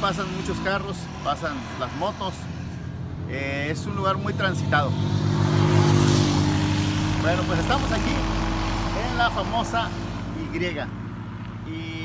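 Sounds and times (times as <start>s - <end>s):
vehicles passing on highway: 0.0s - 12.0s.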